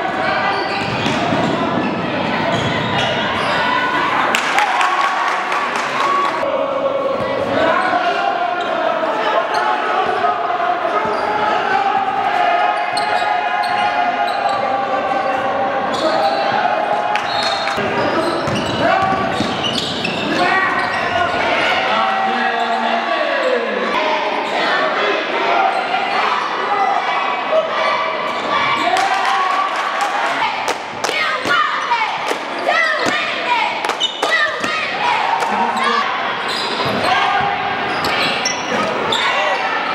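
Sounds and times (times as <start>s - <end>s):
indistinct voices: 0.0s - 39.9s.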